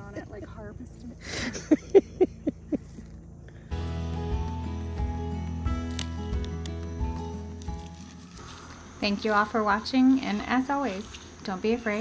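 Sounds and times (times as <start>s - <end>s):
person laughing: 1.2s - 3.2s.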